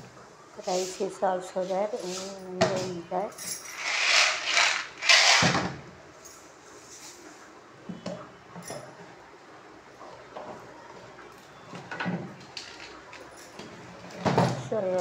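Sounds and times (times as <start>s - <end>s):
loud scraping rustle: 3.7s - 5.5s.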